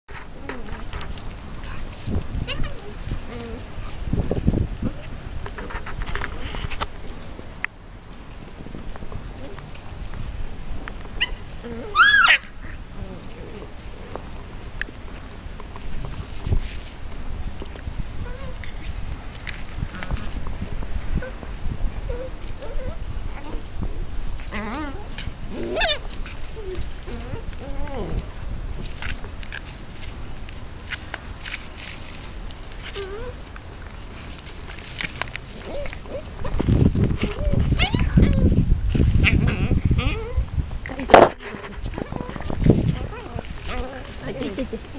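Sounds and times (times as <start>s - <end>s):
puppies whimpering: 22.0s - 23.6s, 24.5s - 28.2s, 37.2s - 38.5s.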